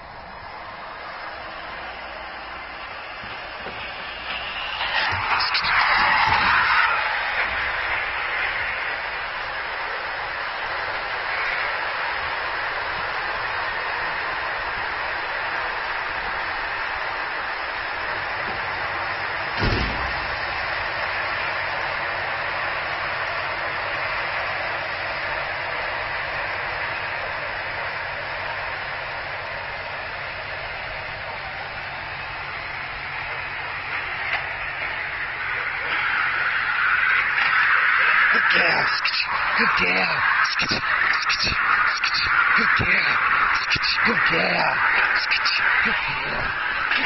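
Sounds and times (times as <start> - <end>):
mechanical lure whirring on rail: 0.0 - 47.0
short knock: 19.6 - 20.2.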